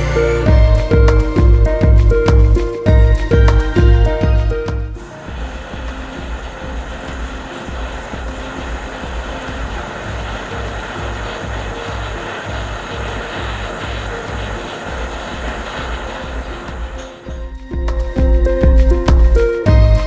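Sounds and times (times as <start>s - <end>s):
music with low beat: 0.0s - 20.0s
gas torch flame hissing: 5.0s - 17.4s.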